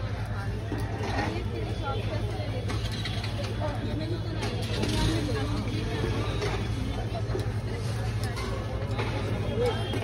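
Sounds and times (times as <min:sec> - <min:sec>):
people talking: 0:00.0 - 0:10.0
street traffic engine rumble: 0:00.0 - 0:10.0.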